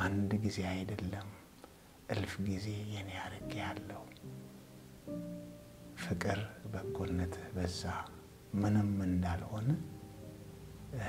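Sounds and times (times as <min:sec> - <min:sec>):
man speaking: 0:00.0 - 0:01.4, 0:02.1 - 0:04.2, 0:06.0 - 0:09.9
soft background music: 0:00.0 - 0:11.0.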